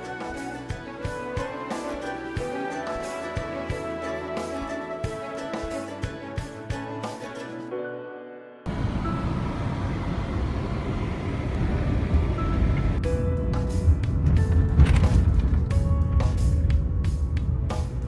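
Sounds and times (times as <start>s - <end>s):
plucked background music: 0.0s - 10.3s, 12.2s - 18.0s
car road and wind rumble: 8.7s - 18.0s.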